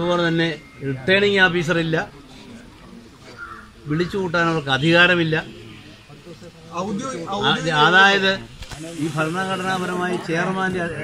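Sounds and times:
low background murmur: 0.0s - 11.0s
crow cawing: 3.3s - 4.3s
man speaking: 3.8s - 11.0s.

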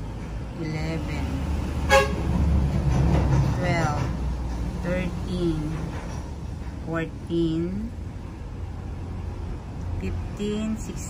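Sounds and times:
low engine rumble: 0.0s - 11.0s
person speaking: 0.6s - 1.6s, 3.6s - 4.1s, 4.8s - 5.9s, 6.9s - 8.0s, 10.0s - 11.0s.

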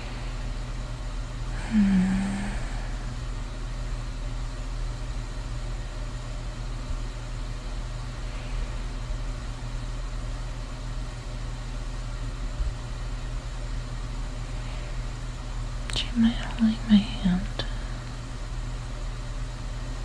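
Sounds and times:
low ambient hum: 0.0s - 20.0s.

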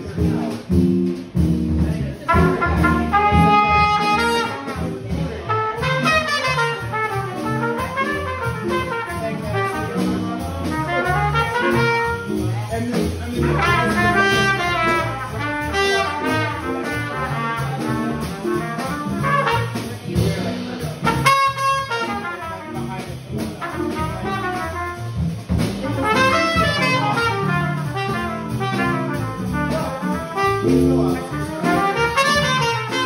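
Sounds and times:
small band playing: 0.0s - 33.0s
trumpet playing jazz: 0.0s - 33.0s.

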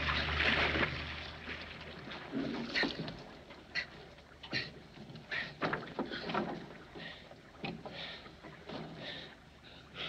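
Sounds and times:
water sloshing around boat: 0.0s - 10.0s.

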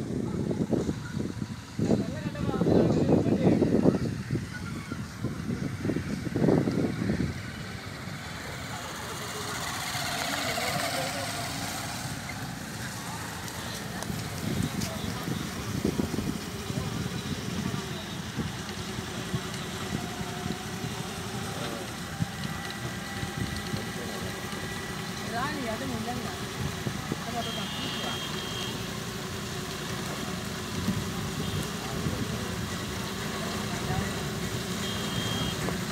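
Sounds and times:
indistinct voices: 0.0s - 35.9s
tractor engine running: 0.0s - 35.9s
dozer blade pushing gravel: 8.4s - 25.5s
high steady beep: 34.8s - 35.6s.

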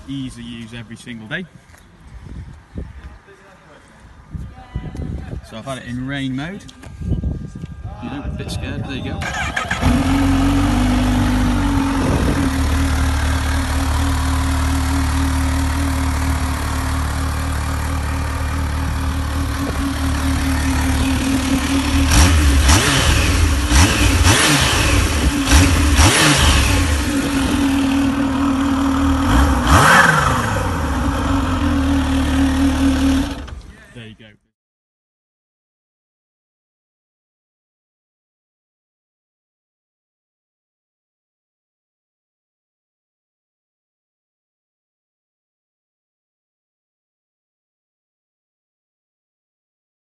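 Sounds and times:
motorcycle engine idling and revving: 9.0s - 33.8s.

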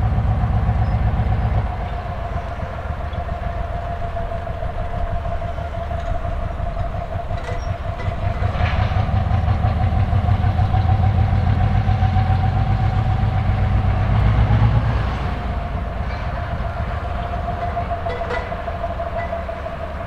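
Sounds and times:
diesel locomotive engine rumble: 0.0s - 20.0s
steady high whine: 0.0s - 20.0s.

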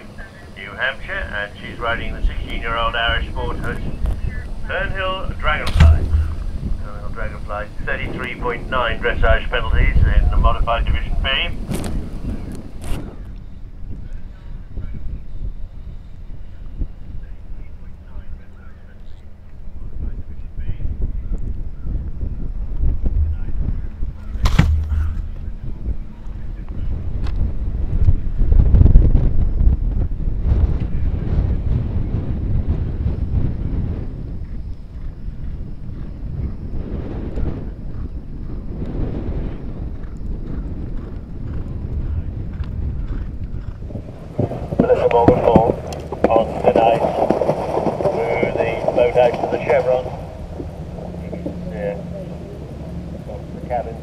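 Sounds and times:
indistinct voices: 0.0s - 8.2s, 44.1s - 54.0s
wind buffeting microphone: 0.0s - 54.0s.

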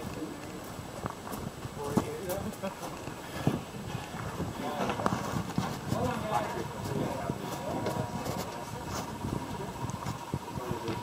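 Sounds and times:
people talking faintly: 0.0s - 11.0s.

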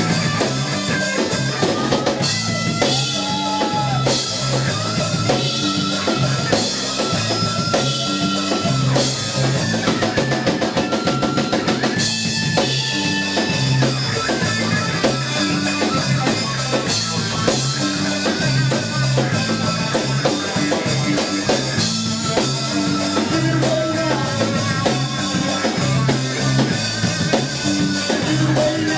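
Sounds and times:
bass line: 0.0s - 28.9s
drum kit beat: 0.0s - 28.9s
electric guitar: 0.0s - 28.9s.

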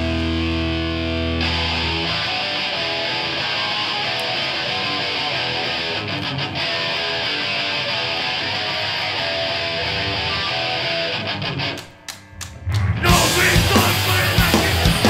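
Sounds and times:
distorted electric guitar chords: 0.0s - 15.0s
punk band playing: 0.0s - 15.0s.

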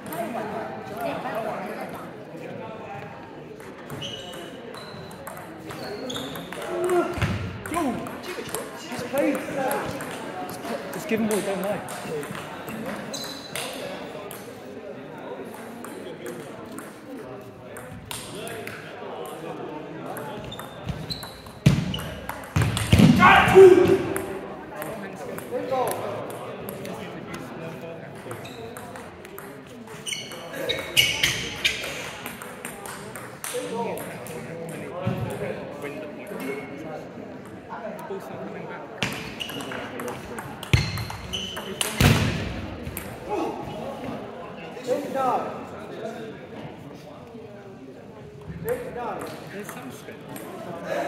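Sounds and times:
voices in a hall: 0.0s - 51.0s
table tennis balls clicking: 28.2s - 30.4s.

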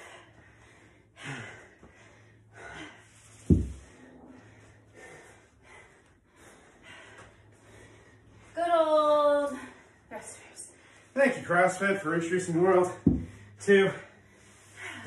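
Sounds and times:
loud low thud: 3.5s - 3.8s.

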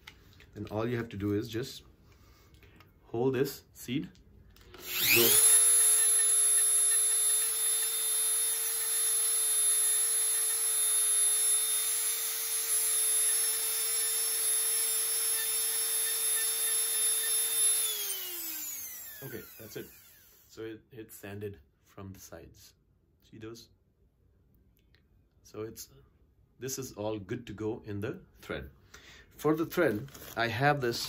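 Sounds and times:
rotary tool whining: 4.6s - 20.6s.

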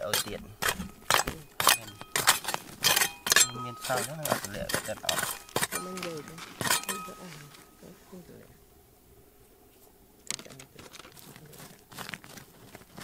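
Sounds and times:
trowel clinking and scraping stones: 0.0s - 7.7s, 10.3s - 13.0s.

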